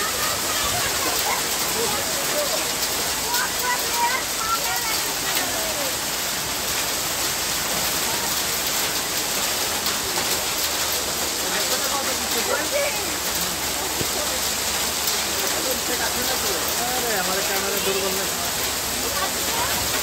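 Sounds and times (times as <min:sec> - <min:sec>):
heavy rain and hail on street: 0:00.0 - 0:20.0.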